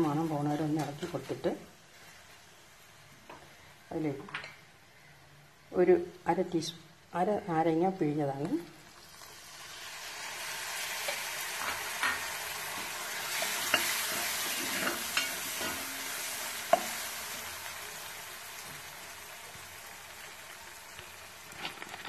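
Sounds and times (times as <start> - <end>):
spices sizzling in hot oil: 7.2 - 22.0.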